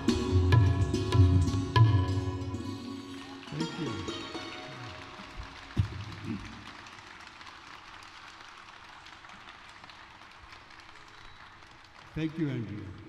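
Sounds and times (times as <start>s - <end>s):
audience applauding: 2.8s - 13.0s.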